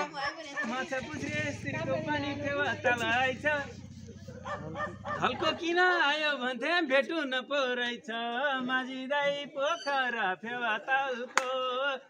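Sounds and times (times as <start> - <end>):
man's wavering voice: 0.6 - 6.7.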